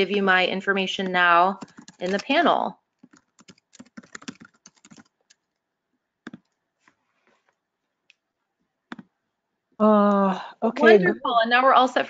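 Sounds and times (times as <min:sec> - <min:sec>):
typing on computer keyboard: 0:01.1 - 0:05.6, 0:06.2 - 0:06.6.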